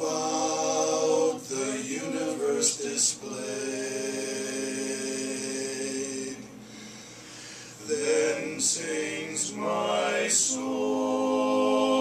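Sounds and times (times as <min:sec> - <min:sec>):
men singing in close harmony: 0:00.0 - 0:06.6, 0:07.8 - 0:12.0.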